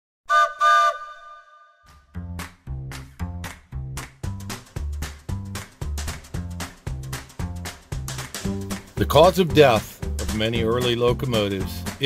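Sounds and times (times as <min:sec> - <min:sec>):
railroad whistle blasts: 0:00.3 - 0:01.9.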